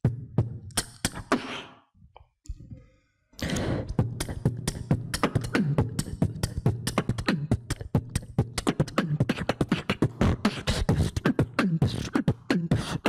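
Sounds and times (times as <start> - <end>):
man beatboxing: 0.4 - 1.8, 3.4 - 13.0.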